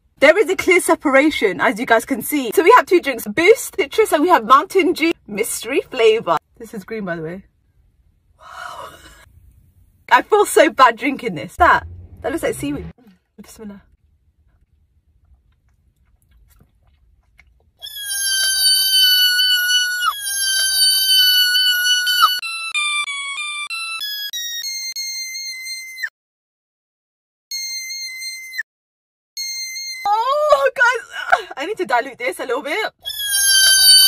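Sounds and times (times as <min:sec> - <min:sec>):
electronic ringtone melody: 0:22.1 - 0:26.0, 0:29.4 - 0:30.1.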